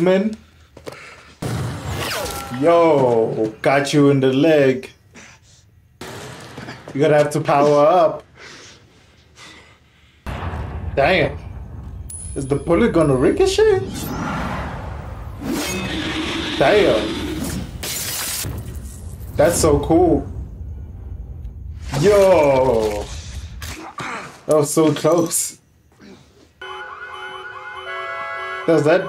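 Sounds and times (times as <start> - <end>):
sharp hit: 10.3 - 15.9
electronic alarm whooping: 26.6 - 29.0.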